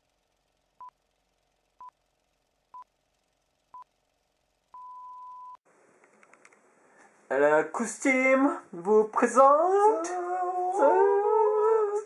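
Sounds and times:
small clicks: 6.0s - 6.6s.

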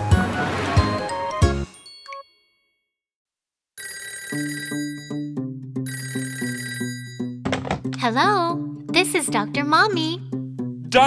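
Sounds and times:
cartoon telephone ringtone: 3.8s - 7.4s.

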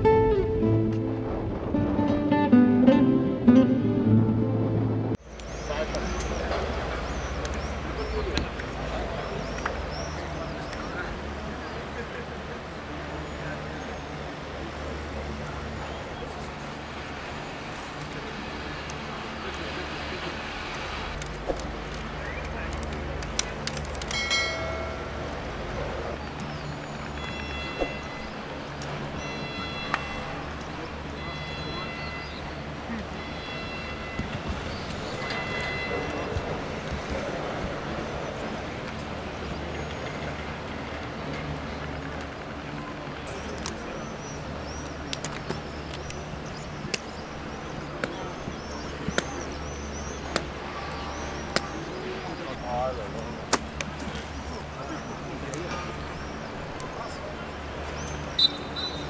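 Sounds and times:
steady low rumble: 0.0s - 5.2s
players talking: 5.6s - 27.3s, 34.2s - 58.9s.

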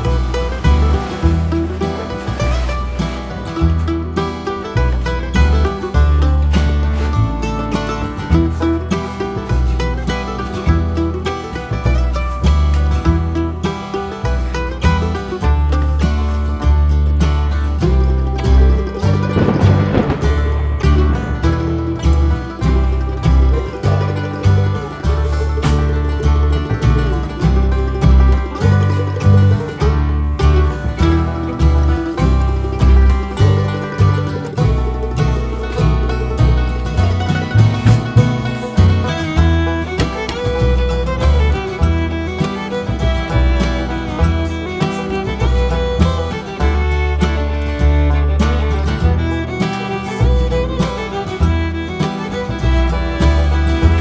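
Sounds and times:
upbeat bluegrass music: 0.0s - 54.0s.

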